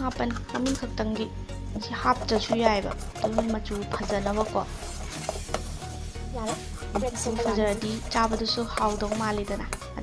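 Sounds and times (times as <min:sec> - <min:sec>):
woman speaking: 0:00.0 - 0:04.8, 0:06.3 - 0:10.0
batter stirred in metal bowl: 0:00.0 - 0:10.0.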